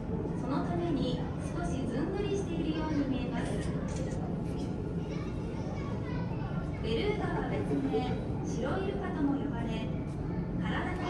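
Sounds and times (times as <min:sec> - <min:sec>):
indistinct chatter: 0:00.0 - 0:11.0
low background noise: 0:00.0 - 0:11.0
children's voices: 0:00.7 - 0:09.2, 0:09.8 - 0:11.0.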